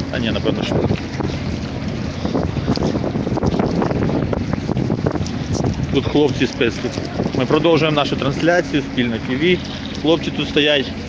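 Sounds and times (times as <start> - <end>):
noisy background din: 0.0 - 11.0
wind buffeting microphone: 0.0 - 11.0.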